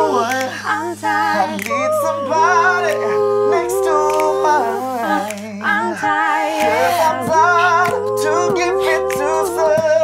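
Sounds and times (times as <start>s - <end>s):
a cappella group singing in harmony: 0.0s - 10.0s.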